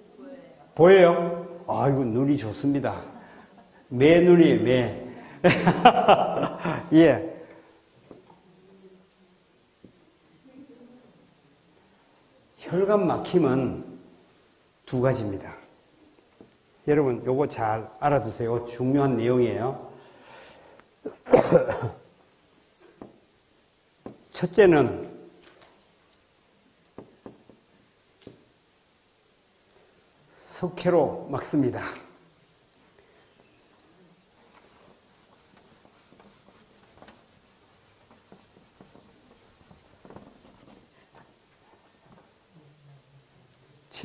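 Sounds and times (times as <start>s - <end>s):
man coughing: 21.1s - 22.1s
eraser rubbing on whiteboard: 34.3s - 41.4s.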